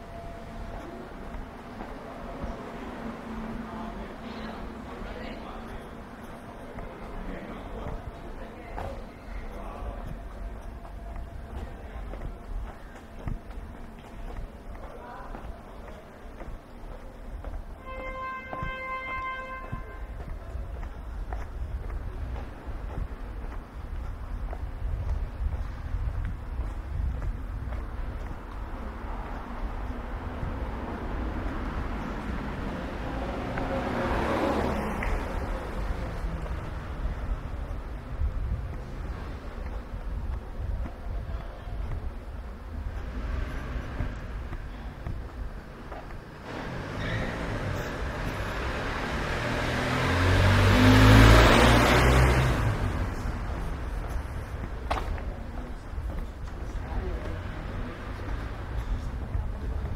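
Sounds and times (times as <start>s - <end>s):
low street rumble: 0.0s - 59.9s
motor vehicle passing: 30.2s - 37.7s, 46.4s - 54.8s.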